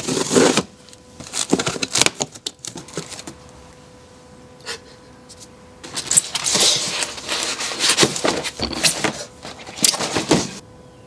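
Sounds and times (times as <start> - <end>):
foam and cardboard scraping: 0.0 - 2.2, 5.8 - 10.6.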